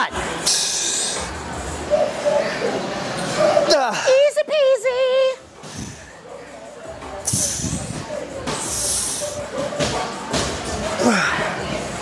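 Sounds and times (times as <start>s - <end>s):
faint background voices: 5.2s - 12.0s.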